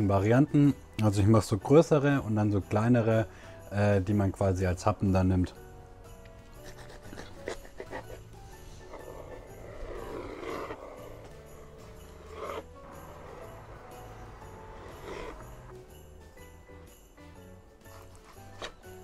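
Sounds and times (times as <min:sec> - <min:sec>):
quiet background music: 0:00.0 - 0:19.0.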